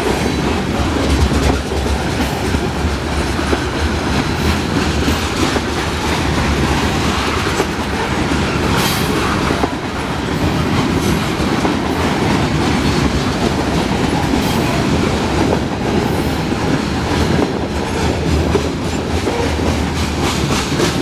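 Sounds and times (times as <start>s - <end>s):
train wheels rumbling on rail: 0.0s - 21.0s.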